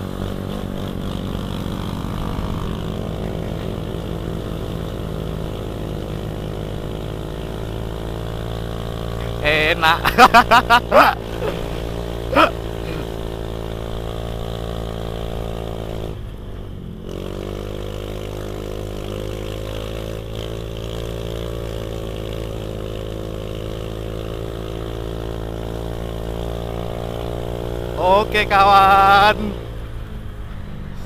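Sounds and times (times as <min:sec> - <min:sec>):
scooter engine revving: 0:00.0 - 0:30.0.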